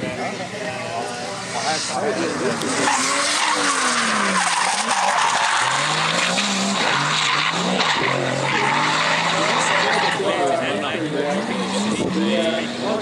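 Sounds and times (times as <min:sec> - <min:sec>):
car engine at high revs: 0:00.0 - 0:13.0
tyres screeching: 0:01.7 - 0:10.6.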